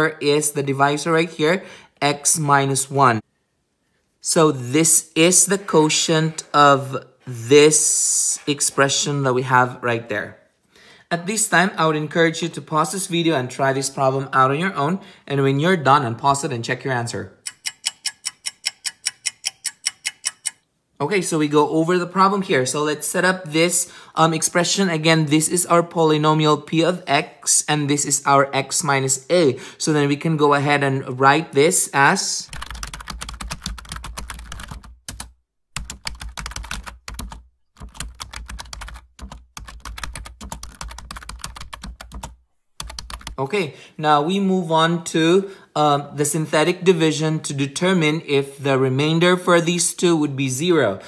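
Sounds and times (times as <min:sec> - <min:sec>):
clock ticking: 0:17.4 - 0:20.6
ballpoint pen writing on paper: 0:17.5 - 0:20.6.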